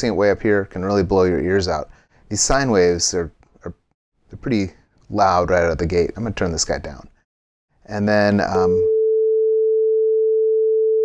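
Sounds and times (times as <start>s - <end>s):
sine wave test tone: 8.9s - 11.0s.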